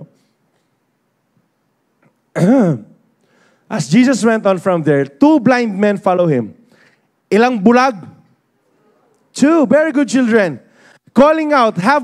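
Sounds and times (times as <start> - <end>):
man clearing his throat: 2.3 - 3.0.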